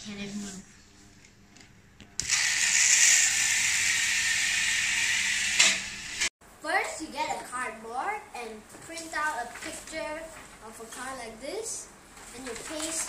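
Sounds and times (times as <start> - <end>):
small electric motor whirring: 2.2 - 6.3.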